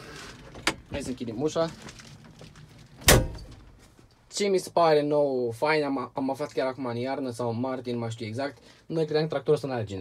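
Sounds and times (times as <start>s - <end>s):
tractor cab door slamming: 3.0s - 3.8s.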